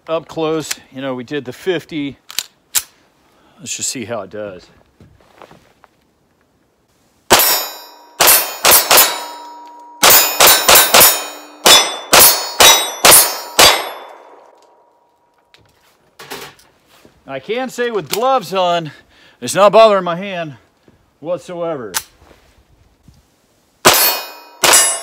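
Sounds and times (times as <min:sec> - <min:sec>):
pistol shots: 0:07.3 - 0:09.4, 0:10.0 - 0:14.5
steel targets clanging: 0:07.3 - 0:14.5, 0:23.9 - 0:25.0.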